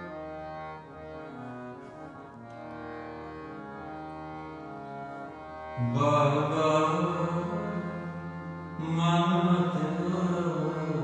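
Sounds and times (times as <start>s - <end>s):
harmonium reed chords: 0.0s - 11.0s.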